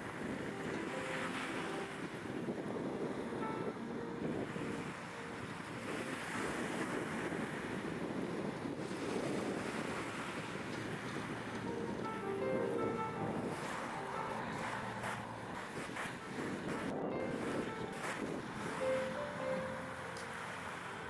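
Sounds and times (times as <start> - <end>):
wind buffeting microphone: 0.0 - 20.8
soft background music: 0.0 - 21.0
waves breaking on shore: 0.0 - 21.0.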